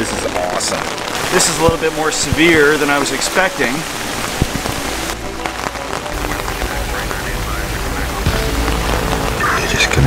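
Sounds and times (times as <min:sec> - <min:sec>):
heavy rain on plastic sheeting: 0:00.0 - 0:10.0.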